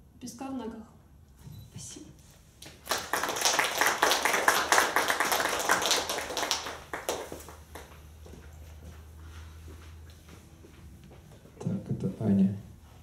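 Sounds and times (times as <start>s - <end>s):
small audience applauding: 2.6s - 8.2s.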